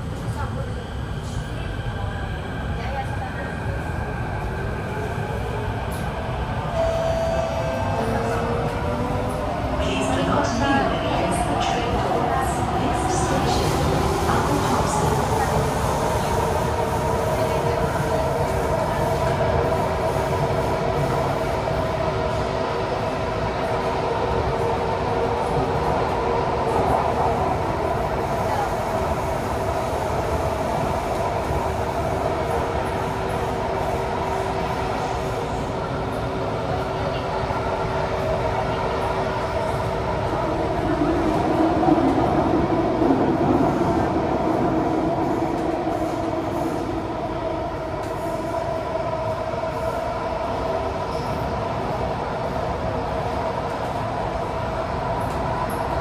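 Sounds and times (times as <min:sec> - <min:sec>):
metro train rumble: 0:00.0 - 0:56.0.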